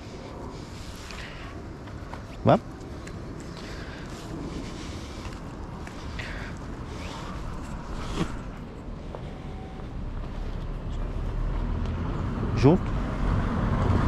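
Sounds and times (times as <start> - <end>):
car approaching: 0.0 - 14.0
traffic rumble: 0.0 - 14.0.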